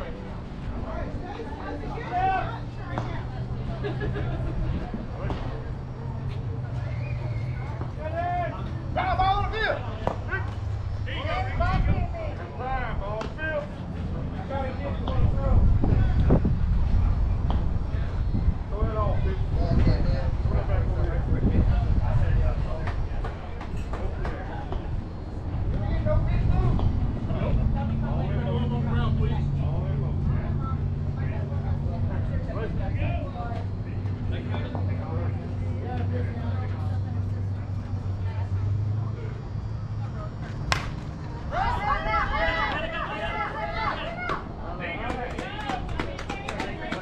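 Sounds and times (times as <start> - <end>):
people talking and calling out: 0.0 - 47.0
bat cracking: 40.6 - 41.3
people shouting: 40.7 - 44.5.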